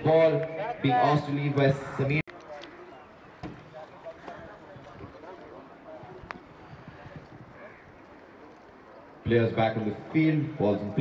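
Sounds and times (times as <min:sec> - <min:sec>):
faint voices calling: 0:00.0 - 0:11.0
hooves clopping on grass: 0:02.3 - 0:11.0.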